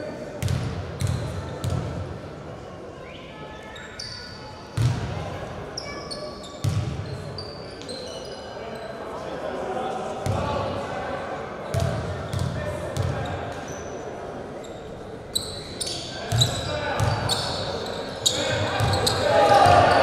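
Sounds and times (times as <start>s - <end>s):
voices echoing in hall: 0.0s - 20.0s
sneakers squeaking: 0.4s - 1.8s, 3.1s - 5.0s, 5.7s - 9.0s, 11.6s - 20.0s.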